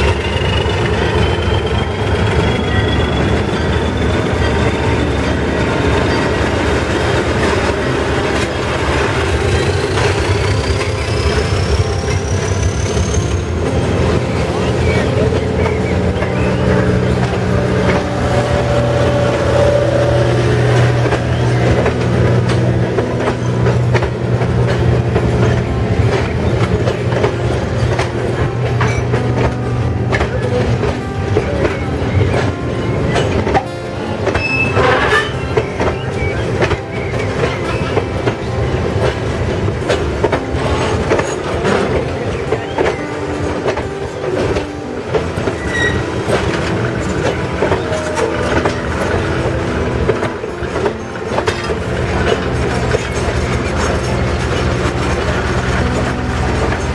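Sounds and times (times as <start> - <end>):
wheel squeal: 0.0 - 7.5, 8.2 - 22.4, 34.3 - 38.5, 45.4 - 49.7
train wheels clacking on rails: 0.0 - 56.9.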